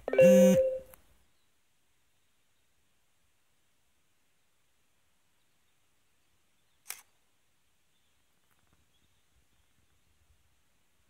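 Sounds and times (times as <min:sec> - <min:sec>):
camera shutter clack: 0:06.8 - 0:07.1.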